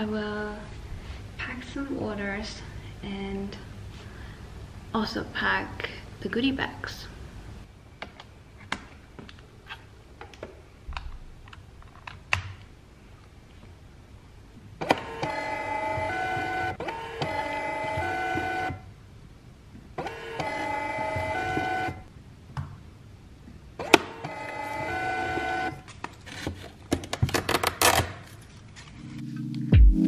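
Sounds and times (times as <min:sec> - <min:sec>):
label printer motor whine: 0:14.9 - 0:18.8, 0:20.0 - 0:22.0, 0:23.8 - 0:25.8.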